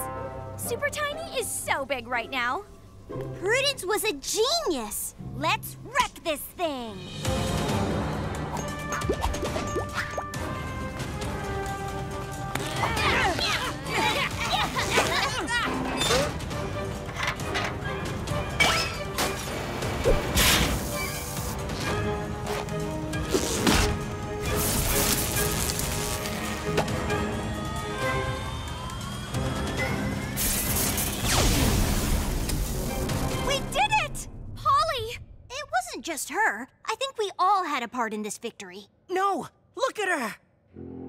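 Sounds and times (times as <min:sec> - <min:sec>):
cartoon action music: 0:07.0 - 0:10.9.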